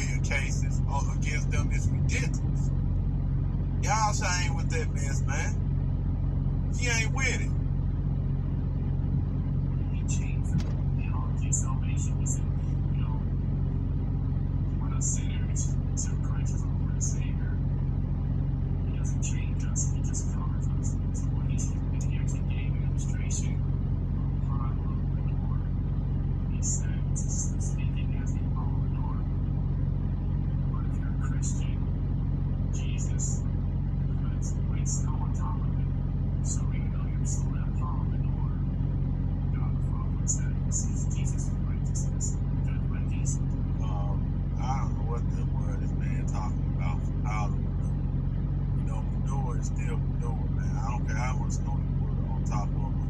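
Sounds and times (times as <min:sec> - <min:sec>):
speech through phone speaker: 0:00.0 - 0:02.6, 0:03.8 - 0:05.6, 0:06.8 - 0:07.5, 0:09.8 - 0:13.3, 0:14.8 - 0:17.6, 0:18.9 - 0:23.6, 0:24.2 - 0:25.7, 0:26.5 - 0:29.3, 0:30.7 - 0:31.8, 0:32.8 - 0:33.4, 0:34.1 - 0:38.6, 0:39.6 - 0:47.6, 0:48.8 - 0:53.0
low hum: 0:00.0 - 0:53.0.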